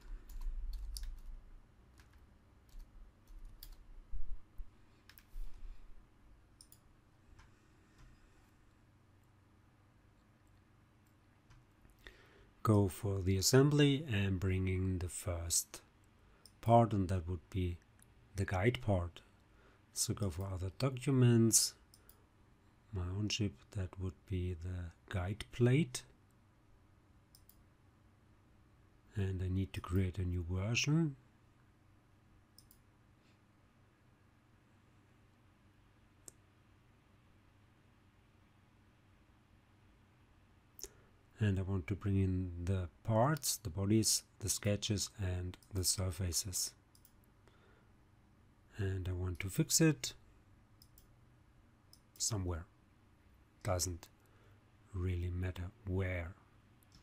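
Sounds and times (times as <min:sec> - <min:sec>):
computer mouse clicks: 0:05.0 - 0:05.6, 0:06.6 - 0:08.1, 0:32.6 - 0:32.8, 0:46.9 - 0:47.3, 0:50.8 - 0:51.1
keyboard and mouse clicks: 0:05.1 - 0:05.6
person speaking: 0:19.9 - 0:21.9, 0:29.1 - 0:31.2, 0:40.8 - 0:46.8, 0:48.7 - 0:50.2, 0:52.2 - 0:52.7, 0:53.6 - 0:54.2, 0:54.9 - 0:56.4.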